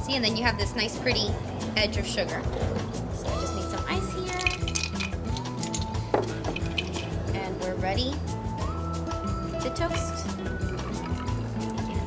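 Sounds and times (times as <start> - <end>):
background music: 0.0 - 12.0
ice clinking in glass: 4.3 - 7.2.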